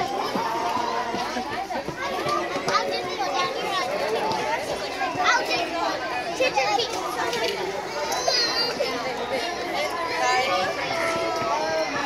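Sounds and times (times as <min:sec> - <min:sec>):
adults and children chattering: 0:00.0 - 0:12.0.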